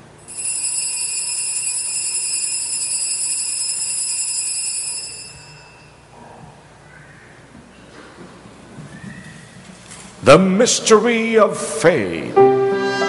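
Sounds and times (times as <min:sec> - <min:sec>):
altar bells ringing: 0:00.2 - 0:06.1.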